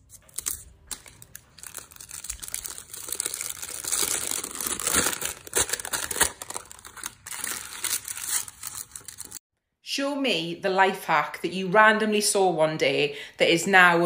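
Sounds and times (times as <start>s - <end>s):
baking paper crinkling: 0.0s - 9.4s.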